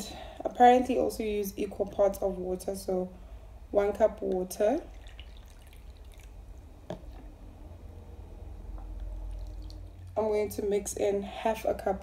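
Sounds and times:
water trickling and dripping: 4.3s - 7.3s, 8.8s - 10.2s.

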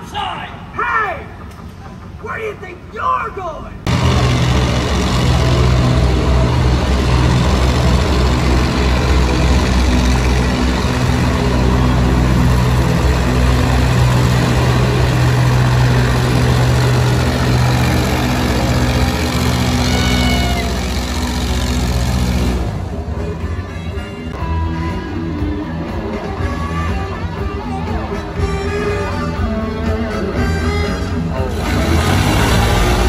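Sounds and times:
airboat engine and propeller: 3.9s - 23.8s, 31.4s - 33.0s.

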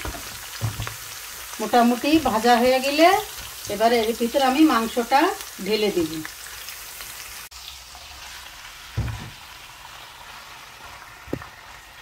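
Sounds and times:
food sizzling in hot oil: 0.0s - 12.0s
low thump: 9.0s - 9.4s.

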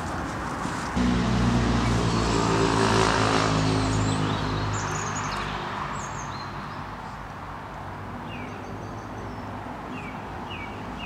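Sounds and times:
low engine-like drone: 1.0s - 4.8s.

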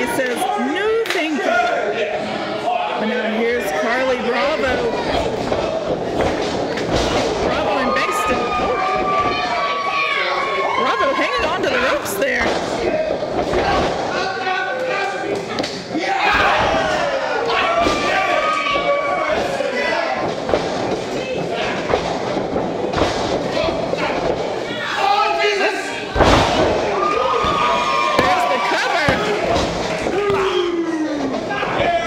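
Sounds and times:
people shouting: 7.2s - 12.0s, 15.9s - 20.3s, 23.5s - 32.0s
wrestlers slamming onto mat: 16.2s - 24.5s, 26.1s - 30.5s.

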